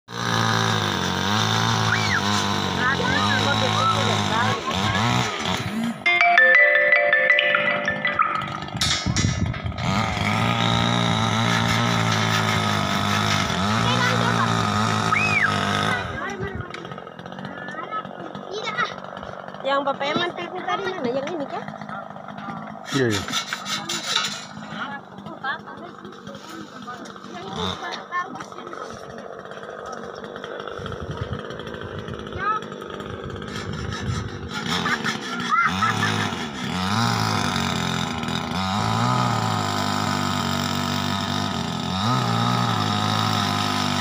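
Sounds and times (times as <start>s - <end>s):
engine running and revving: 0.1s - 6.1s, 8.2s - 19.5s, 27.1s - 44.0s
voices: 1.9s - 8.4s, 13.7s - 30.9s
rasping rustling scrapes: 8.7s - 14.5s, 22.4s - 24.9s, 26.1s - 31.8s, 33.1s - 35.6s.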